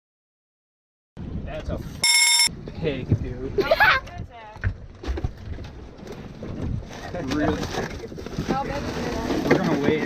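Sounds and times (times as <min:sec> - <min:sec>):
short electronic beep: 0:02.0 - 0:02.5.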